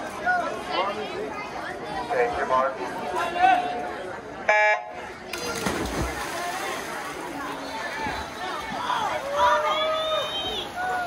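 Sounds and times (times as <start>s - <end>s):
crowd voices: 0.0s - 11.0s
swimmers splashing into water: 5.3s - 11.0s.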